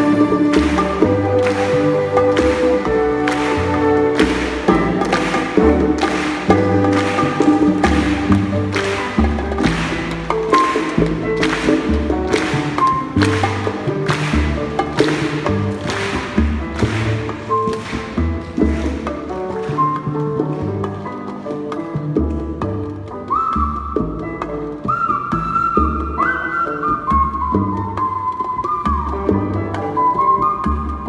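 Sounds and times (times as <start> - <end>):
percussion strokes: 0.0 - 23.3
latin jazz band with orchestra: 0.0 - 31.0.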